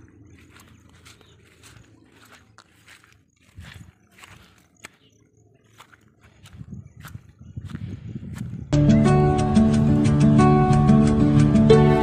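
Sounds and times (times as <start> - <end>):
footsteps through grass: 0.0 - 8.7
instrumental music: 8.8 - 12.0.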